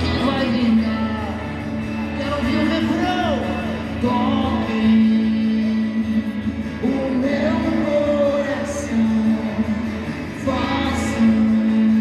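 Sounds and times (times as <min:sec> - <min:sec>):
live rock band guitars: 0:00.0 - 0:12.0.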